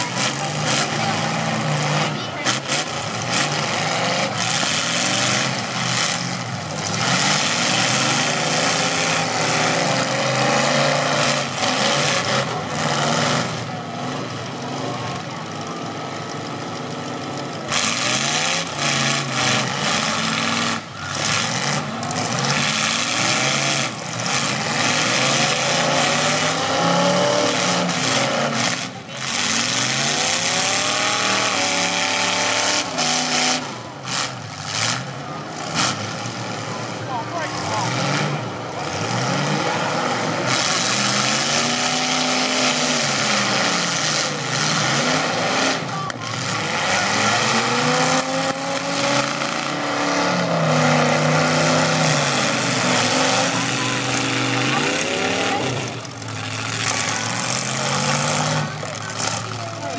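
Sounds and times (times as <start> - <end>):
car engines revving: 0.0 - 59.9
crowd din: 0.0 - 59.9.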